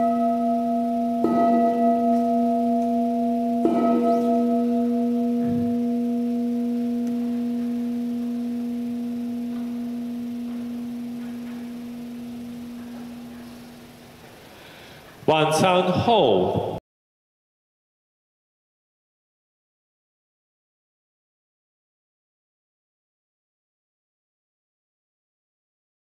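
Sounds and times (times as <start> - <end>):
altar bell ringing: 0.0 - 14.3.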